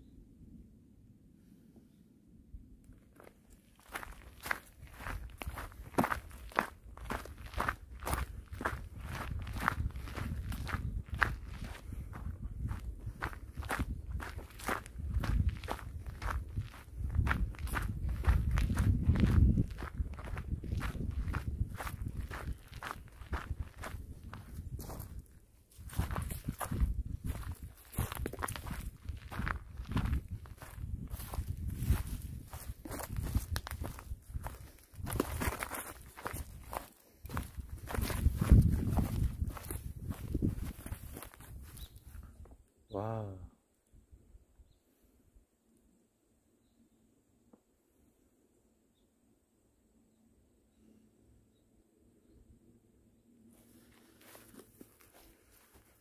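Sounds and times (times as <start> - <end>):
footsteps on forest trail: 2.9 - 42.6, 53.5 - 56.0.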